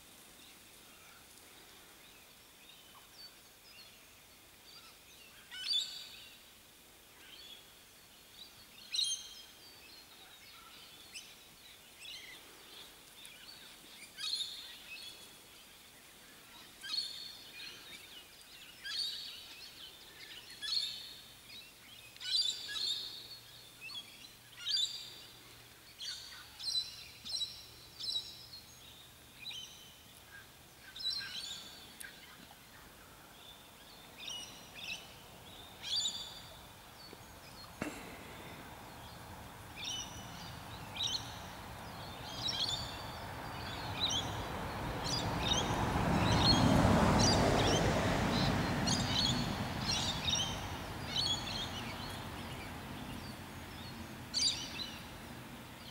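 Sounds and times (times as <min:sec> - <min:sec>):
wild birds calling: 0:30.2 - 0:55.9.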